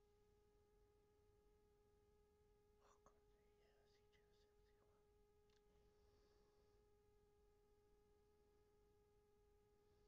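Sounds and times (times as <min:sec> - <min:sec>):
faint steady electronic tone: 0:00.0 - 0:10.0.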